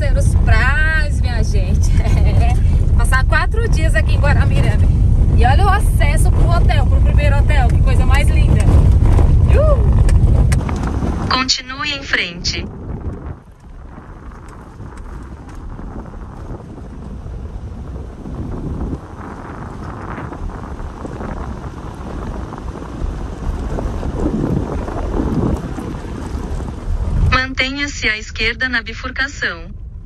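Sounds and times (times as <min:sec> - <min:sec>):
car driving on stony dirt road: 0:00.0 - 0:30.0.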